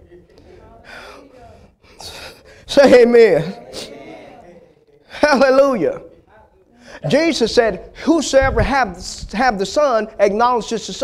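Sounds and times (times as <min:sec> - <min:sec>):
faint murmured speech: 0:03.2 - 0:05.2.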